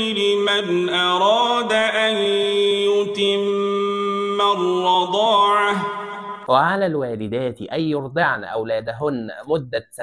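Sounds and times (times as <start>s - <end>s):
person reciting melodically: 0.0s - 10.0s.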